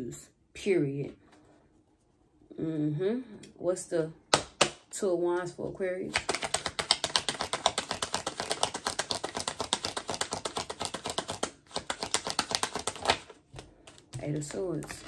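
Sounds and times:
cards being shuffled: 0:06.1 - 0:15.0.

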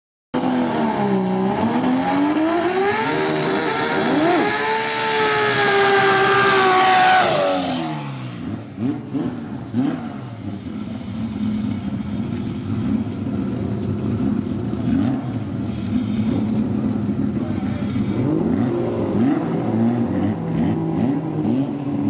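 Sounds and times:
drag car engine revving: 0:00.4 - 0:22.0.

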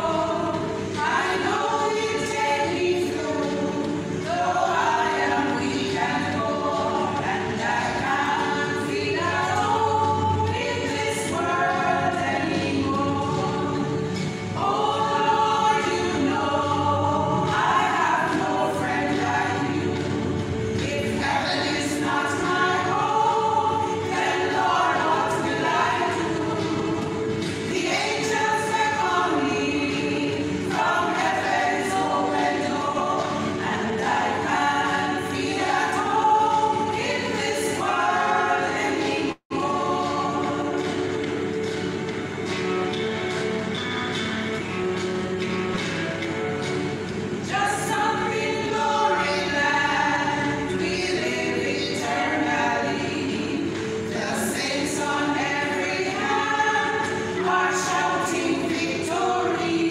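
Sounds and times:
women's choir singing in harmony: 0:00.0 - 0:59.9.

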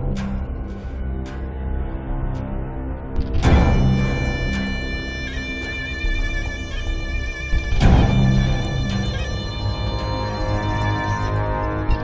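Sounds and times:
low drone: 0:00.0 - 0:12.0
sudden loud orchestral hit: 0:03.4 - 0:12.0
sustained high strings: 0:03.5 - 0:11.8.

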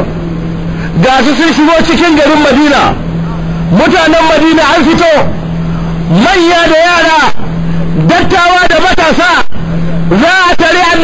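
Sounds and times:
steady low hum: 0:00.0 - 0:11.0
man preaching: 0:00.9 - 0:05.4, 0:06.0 - 0:09.5, 0:10.1 - 0:11.0.

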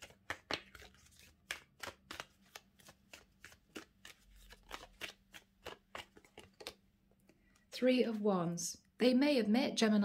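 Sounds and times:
cards being shuffled: 0:00.0 - 0:06.8.

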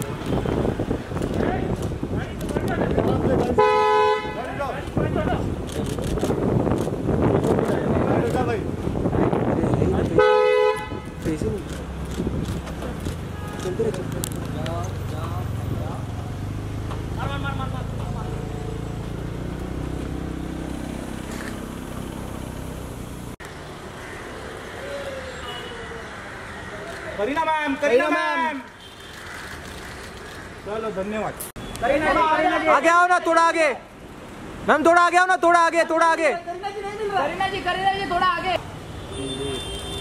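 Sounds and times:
outdoor background noise: 0:00.0 - 0:40.0
car horn two-tone blast: 0:03.6 - 0:04.4, 0:10.2 - 0:11.1.

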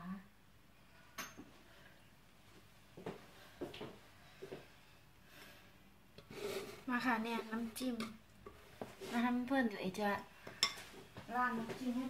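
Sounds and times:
woman speaking: 0:06.9 - 0:08.2, 0:09.0 - 0:10.3, 0:11.3 - 0:12.0
tableware clink: 0:10.6 - 0:10.8.

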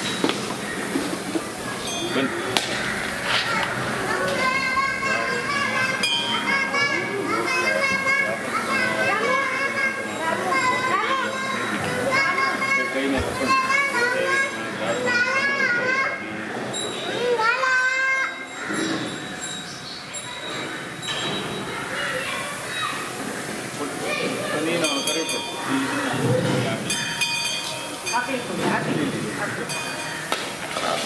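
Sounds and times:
children calling and chattering: 0:00.0 - 0:31.0.

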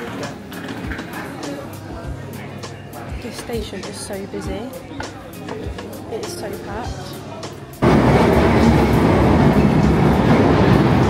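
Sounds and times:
train wheels rumbling on rails: 0:07.8 - 0:11.0.

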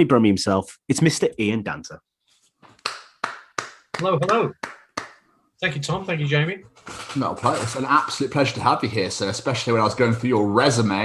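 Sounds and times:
hands clapping: 0:02.7 - 0:05.3.

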